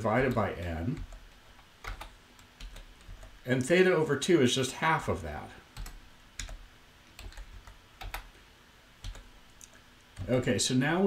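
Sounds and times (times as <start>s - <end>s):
keyboard keystrokes: 1.8s - 3.4s, 5.8s - 8.3s.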